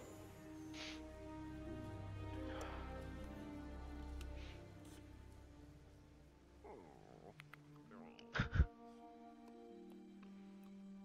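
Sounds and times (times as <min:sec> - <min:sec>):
quiet sustained music tones: 0:00.0 - 0:11.0.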